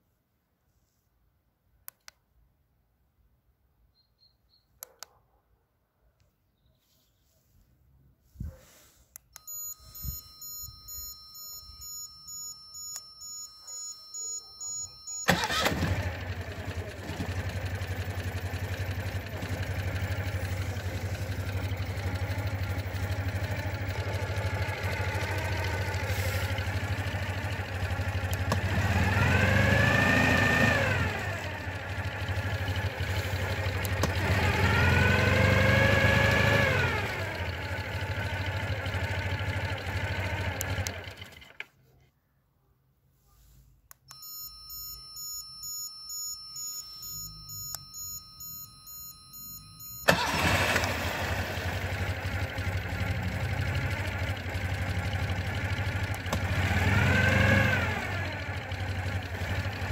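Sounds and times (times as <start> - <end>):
engine starter cranking: 15.1 - 41.7, 49.8 - 59.9
car engine idling and revving: 15.3 - 41.4, 49.6 - 59.9.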